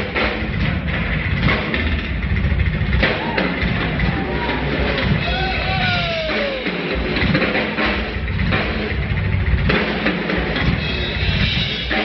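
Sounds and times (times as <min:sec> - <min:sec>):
fast live drumming: 0:00.0 - 0:12.0
rapid bass drum rumble: 0:00.0 - 0:12.0.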